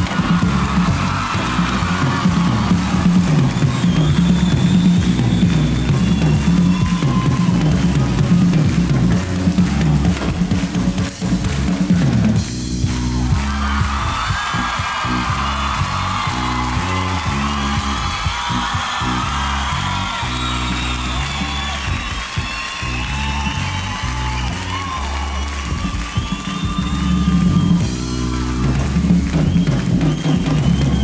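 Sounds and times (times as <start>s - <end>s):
crowd whooping and screaming: 0.0s - 10.3s, 12.6s - 31.0s
bass guitar line: 0.0s - 31.0s
rock band playing live: 0.0s - 31.0s.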